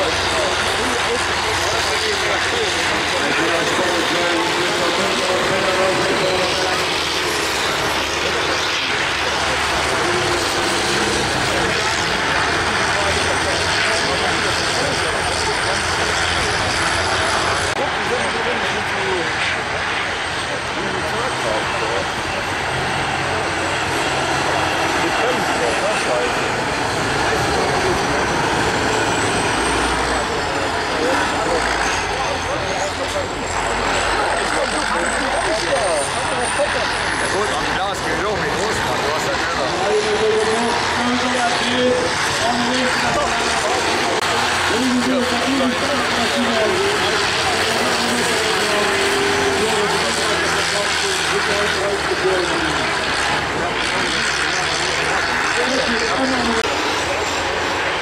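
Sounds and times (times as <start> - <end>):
diesel engines racing: 0.0 - 58.0.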